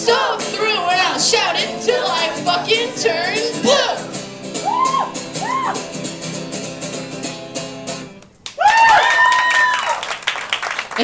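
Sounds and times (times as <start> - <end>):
high voice whooping: 4.6 - 5.9
crowd clapping and cheering: 8.4 - 11.0.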